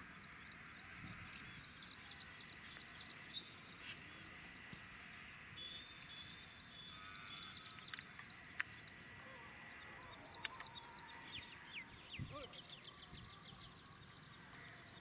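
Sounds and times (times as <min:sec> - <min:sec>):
bird chirping: 0:00.0 - 0:15.0
sharp clicks: 0:07.7 - 0:08.9.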